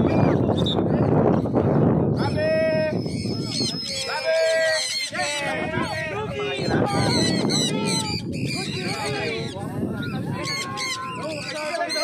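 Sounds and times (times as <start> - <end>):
people talking: 0.0 - 12.0
conures calling: 2.2 - 12.0.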